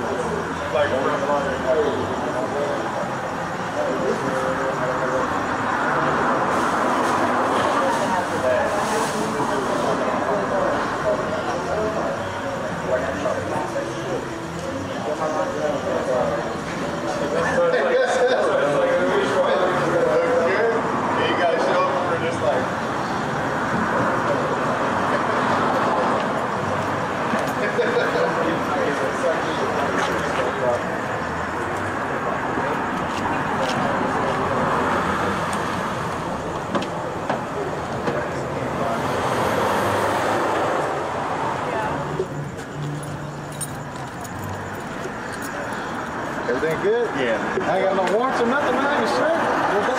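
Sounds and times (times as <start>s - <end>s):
indistinct voices: 0.0s - 49.9s
traffic noise: 0.0s - 49.9s.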